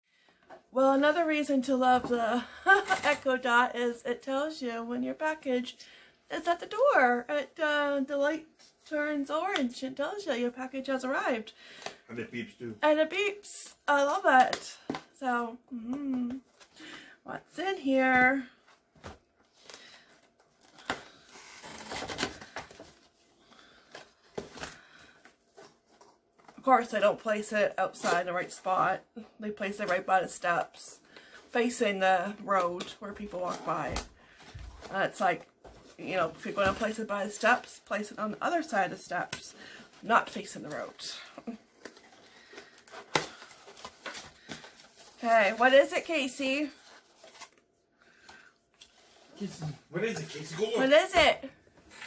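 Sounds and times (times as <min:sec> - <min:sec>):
cardboard rustling: 0:18.9 - 0:26.6, 0:40.0 - 0:47.6.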